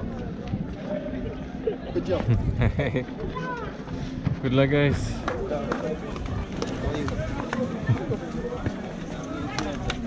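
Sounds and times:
people talking indistinctly: 0.0 - 10.0
footsteps on hard ground: 3.2 - 10.0.

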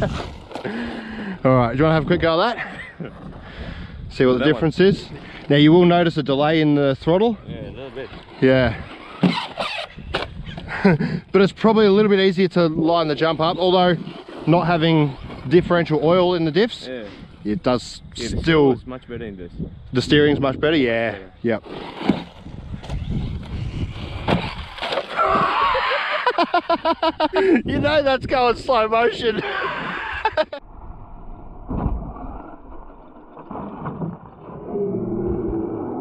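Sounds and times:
men laughing: 0.0 - 1.4, 2.4 - 3.4, 10.5 - 11.3, 25.2 - 28.0, 29.0 - 30.6
electric toy car motor whining: 8.2 - 10.1
low rumbling noise: 30.1 - 36.0.

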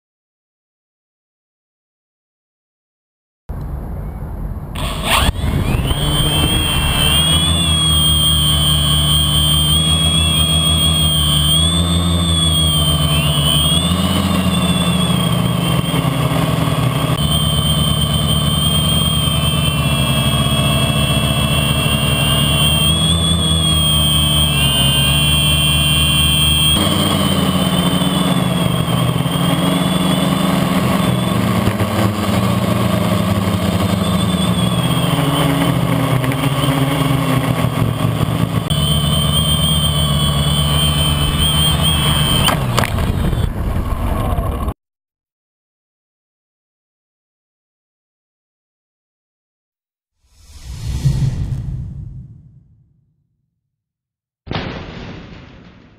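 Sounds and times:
drone motors whining: 4.0 - 44.7.

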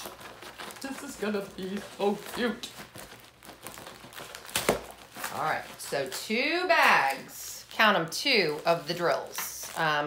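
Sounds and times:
canvas rustling and crinkling: 0.0 - 10.0.

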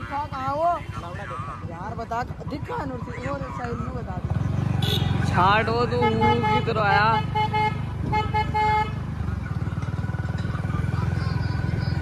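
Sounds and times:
motorcycle engine running: 0.0 - 12.0
vehicle horn short beeps: 4.8 - 5.2.

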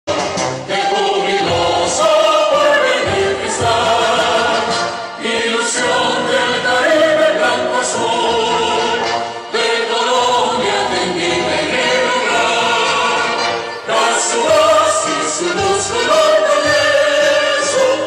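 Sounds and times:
choir of voices singing: 0.1 - 18.0.

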